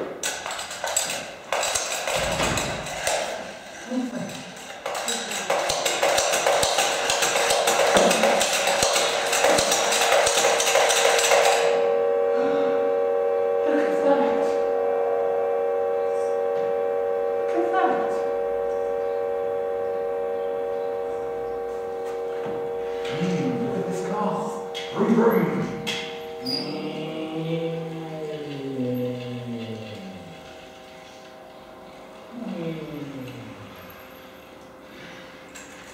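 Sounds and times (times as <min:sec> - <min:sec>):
spinning top whirring and clicking: 0:00.2 - 0:11.8
humming top spinning: 0:00.2 - 0:35.9.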